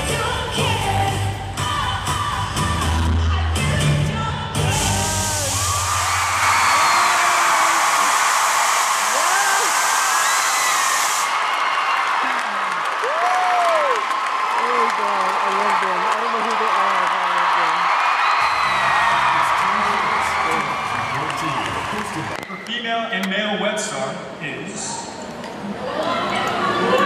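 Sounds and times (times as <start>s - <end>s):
pop music with bass beat: 0.0s - 6.0s
audience cheering and screaming: 4.6s - 22.8s.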